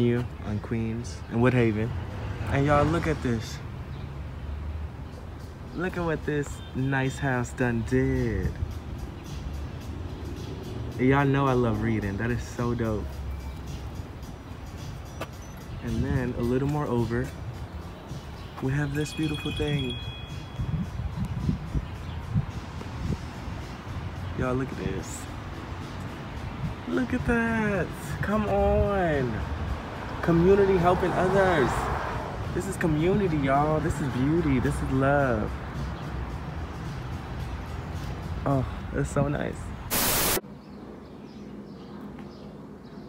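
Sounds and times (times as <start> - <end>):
faint background music: 5.0 - 31.9, 32.5 - 40.4
wind rumble: 20.4 - 23.9
static white noise burst: 39.9 - 40.4.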